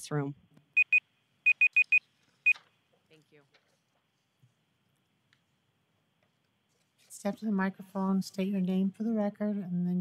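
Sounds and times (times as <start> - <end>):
electronic timer beeping: 0.8 - 2.6.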